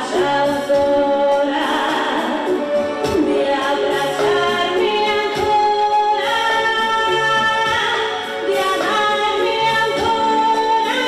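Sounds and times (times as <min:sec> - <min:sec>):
woman singing into microphone: 0:00.0 - 0:11.0.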